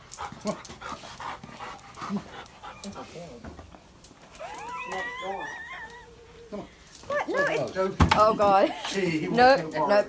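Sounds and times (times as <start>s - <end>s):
dog whining: 4.3s - 7.7s.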